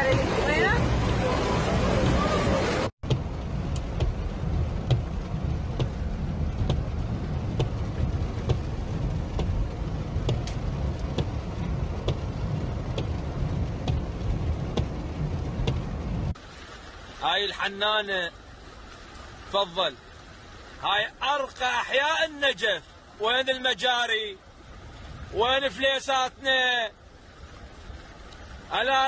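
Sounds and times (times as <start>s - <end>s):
engine and tyres through water: 0.0s - 29.0s
light ticking: 3.0s - 16.0s.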